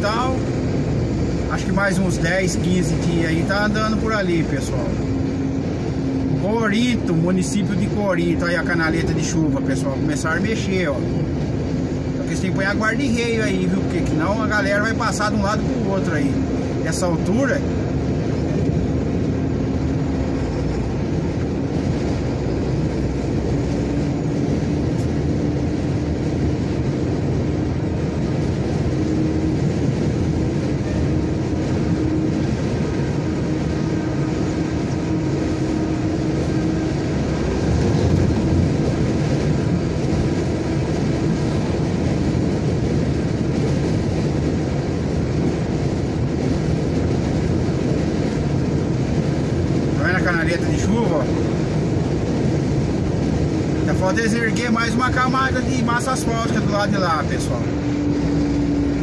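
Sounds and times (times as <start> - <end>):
vehicle engine drone: 0.0 - 59.0
tyre rumble on highway: 9.0 - 59.0.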